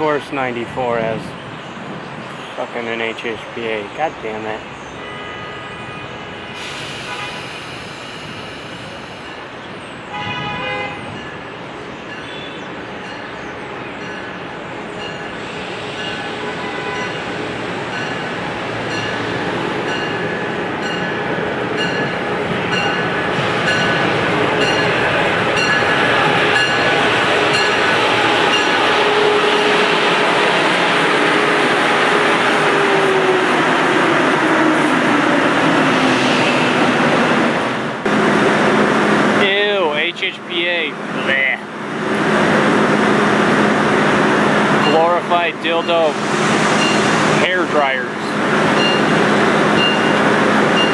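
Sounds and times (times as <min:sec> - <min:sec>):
train horn blast: 0:05.0 - 0:07.9, 0:10.1 - 0:11.3, 0:16.1 - 0:17.3, 0:27.4 - 0:30.5
train rumble: 0:05.7 - 0:50.9
locomotive bell ringing: 0:11.2 - 0:13.4, 0:14.0 - 0:15.4, 0:17.9 - 0:29.4, 0:44.8 - 0:47.9, 0:48.8 - 0:50.9.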